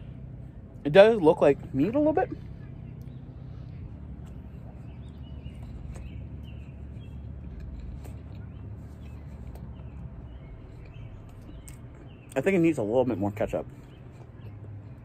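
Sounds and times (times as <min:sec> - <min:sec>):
low rumble: 0:00.0 - 0:12.4
bird chirps: 0:01.7 - 0:15.0.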